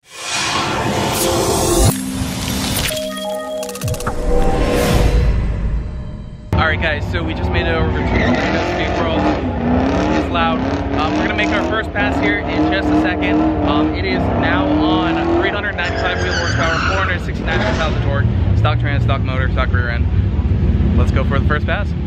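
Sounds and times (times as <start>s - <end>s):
high noisy engine or tyre sound: 6.5s - 22.0s
low rumble of car engines: 6.5s - 22.0s
man talking: 6.6s - 9.4s, 10.1s - 20.1s, 21.0s - 22.0s.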